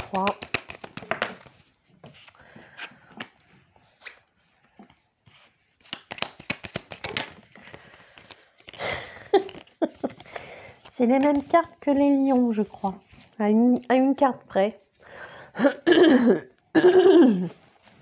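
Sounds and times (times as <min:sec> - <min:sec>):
cards being shuffled: 0:00.0 - 0:04.3, 0:05.3 - 0:13.4
cards rustling on cloth: 0:00.0 - 0:13.9, 0:17.5 - 0:18.0.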